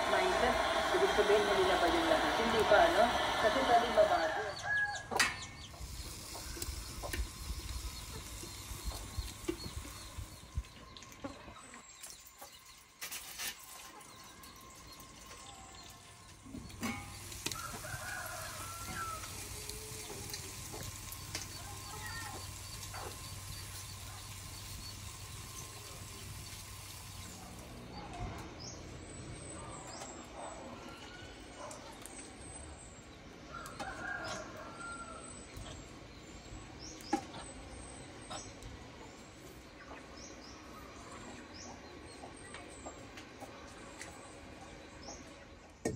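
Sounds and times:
rooster crowing: 0:00.0 - 0:05.2, 0:17.5 - 0:20.0, 0:33.5 - 0:35.3
chickens clucking: 0:36.9 - 0:45.9.

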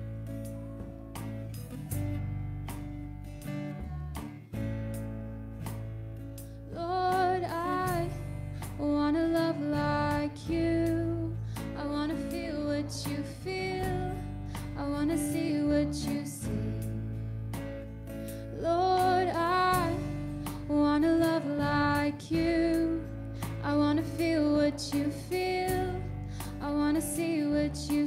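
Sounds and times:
electric bass: 0:00.0 - 0:28.0
strummed acoustic guitar: 0:00.0 - 0:28.0
woman singing: 0:03.7 - 0:04.5, 0:06.7 - 0:17.1, 0:18.5 - 0:28.0.

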